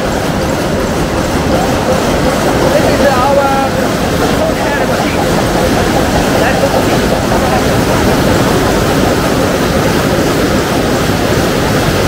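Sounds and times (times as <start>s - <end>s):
heading machines clattering: 0.0s - 12.0s.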